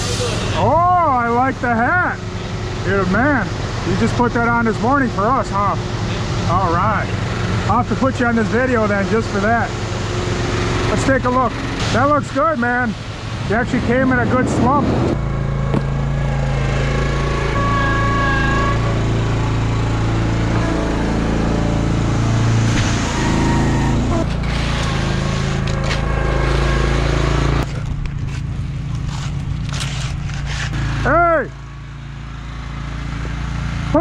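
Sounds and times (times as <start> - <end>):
heavy engine running: 0.0 - 34.0.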